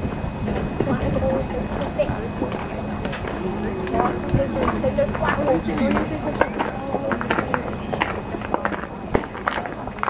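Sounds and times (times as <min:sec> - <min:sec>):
spectators conversing: 0:00.0 - 0:10.0.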